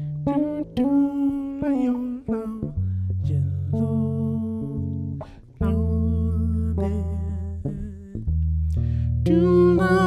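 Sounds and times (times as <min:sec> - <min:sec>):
electric bass notes: 0:00.0 - 0:10.0
man singing with vibrato: 0:09.3 - 0:10.0.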